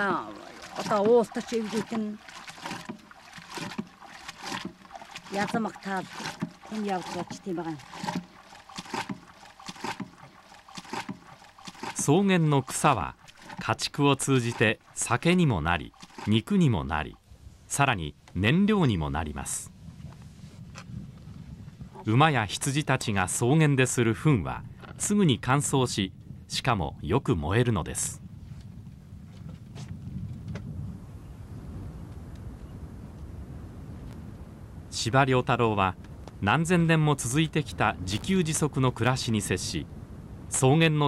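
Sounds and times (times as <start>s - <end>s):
plunger churning milk in a can: 0.0s - 16.5s
fire burning with low rumble: 16.8s - 22.6s, 24.2s - 41.0s.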